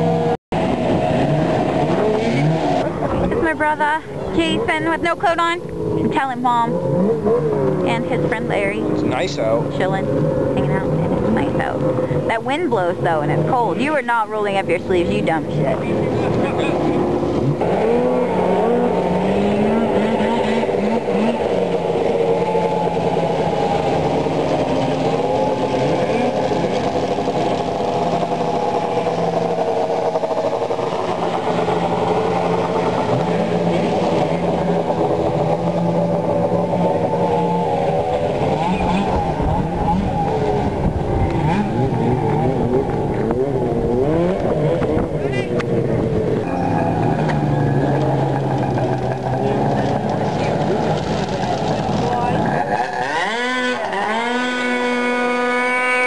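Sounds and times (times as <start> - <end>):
deep rumble: 0.0 - 53.0
snowmobile engines revving: 0.0 - 56.0.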